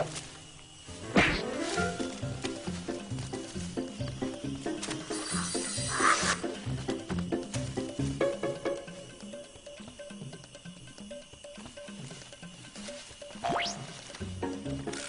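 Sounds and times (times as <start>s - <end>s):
background music with rhythmic beat: 1.0s - 15.0s.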